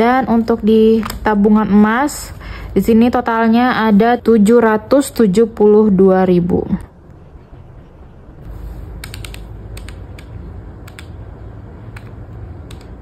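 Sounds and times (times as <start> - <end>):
calculator keys clicking: 9.0 - 11.2, 11.9 - 13.0.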